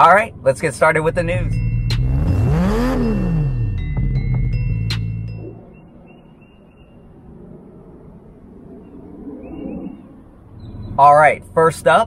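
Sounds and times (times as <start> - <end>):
car sound: 0.0 - 5.6
intro music: 1.2 - 6.1.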